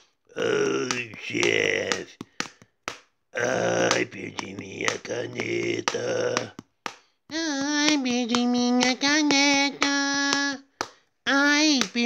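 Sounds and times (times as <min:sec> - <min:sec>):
man singing wordless vowels: 0:00.3 - 0:02.4, 0:03.4 - 0:06.6, 0:07.3 - 0:10.6.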